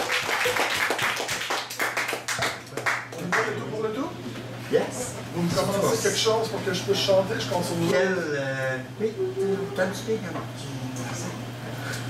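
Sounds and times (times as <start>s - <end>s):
small audience clapping: 0.0s - 3.7s.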